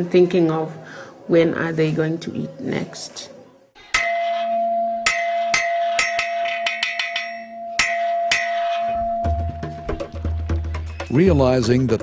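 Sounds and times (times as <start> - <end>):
metal plate bell clanging: 3.9 - 10.3.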